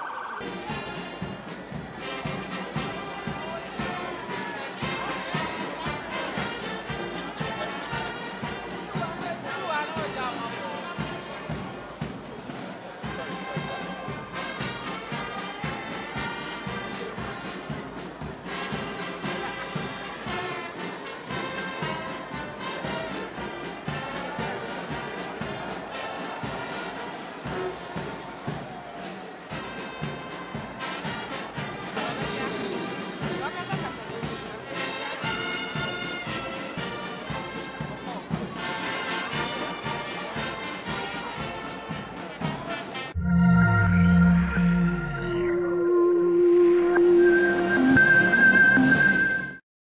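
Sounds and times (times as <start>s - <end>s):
crowd murmur: 0.0s - 49.5s
brass band playing marching music: 0.3s - 49.6s.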